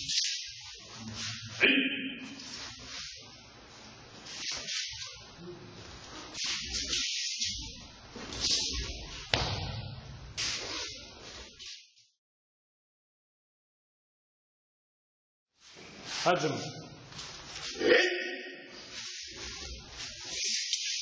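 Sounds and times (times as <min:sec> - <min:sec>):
sharp thump: 0:09.3 - 0:09.9
cotton uniforms swishing: 0:18.8 - 0:21.0.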